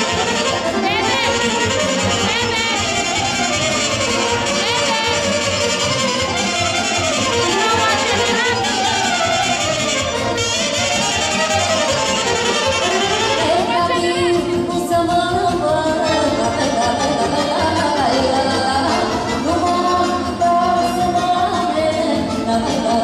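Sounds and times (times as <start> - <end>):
live folk band with violin: 0.0 - 23.0.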